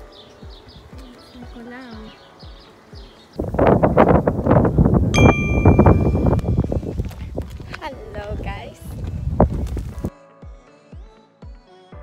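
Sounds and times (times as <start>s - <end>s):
wind buffeting microphone: 3.0s - 10.1s
bright ding: 5.1s - 6.6s.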